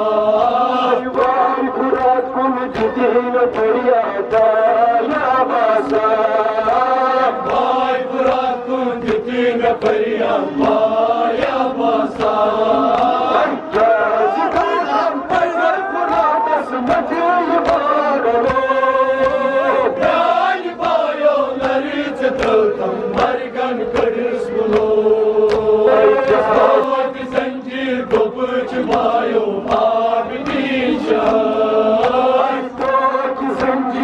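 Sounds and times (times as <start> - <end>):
men chanting a lament: 0.0 - 34.0.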